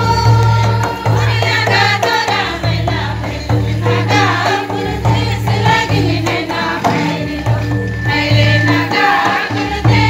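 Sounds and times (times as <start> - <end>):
barrel drum beating: 0.0 - 10.0
group singing: 0.0 - 10.0.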